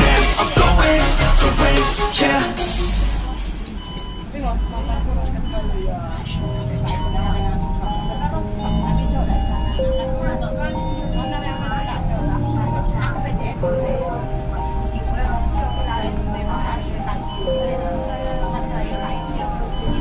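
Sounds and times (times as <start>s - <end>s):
bus engine and road rumble: 0.0s - 20.0s
voices: 0.0s - 20.0s
faint melodic tones: 2.2s - 20.0s.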